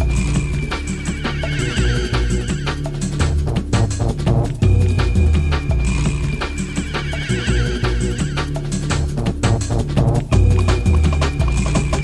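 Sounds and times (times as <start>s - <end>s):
drum and bass music: 0.0s - 12.0s.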